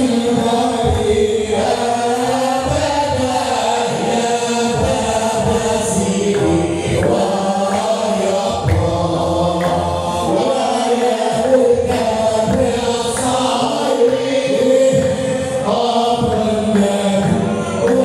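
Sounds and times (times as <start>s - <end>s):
men chanting together: 0.0s - 18.0s.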